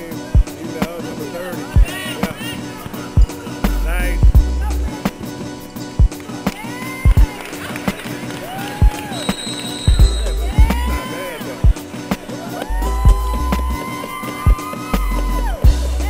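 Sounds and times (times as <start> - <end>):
sneakers squeaking: 5.0 - 15.7.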